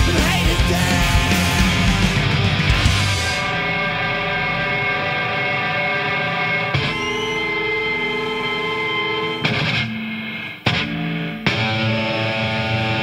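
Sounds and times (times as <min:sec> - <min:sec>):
bass guitar: 0:00.0 - 0:13.0
distorted electric guitar: 0:00.0 - 0:13.0.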